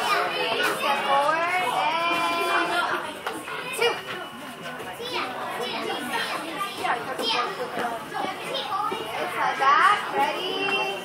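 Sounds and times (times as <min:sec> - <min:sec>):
children talking and calling out: 0:00.0 - 0:11.0.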